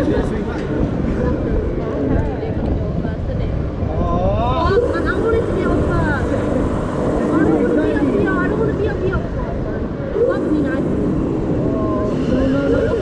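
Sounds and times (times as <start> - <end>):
people talking: 0.0 - 13.0
wind rumble on microphone: 0.0 - 13.0.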